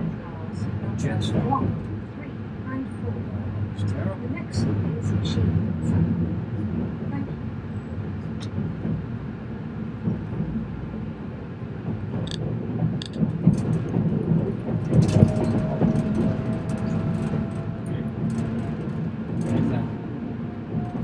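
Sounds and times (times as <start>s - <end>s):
train rumbling at speed: 0.0s - 21.0s
sharp clicks and rattles: 12.1s - 19.9s.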